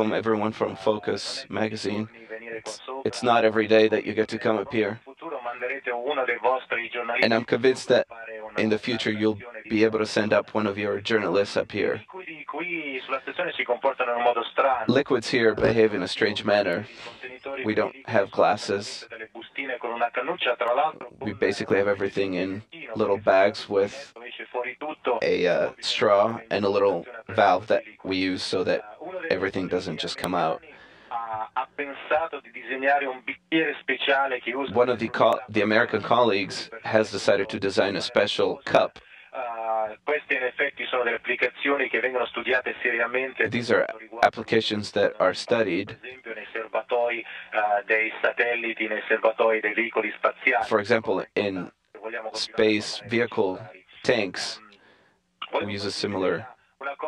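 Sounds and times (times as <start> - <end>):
man talking over radio link: 0.0 - 54.7, 55.4 - 57.0.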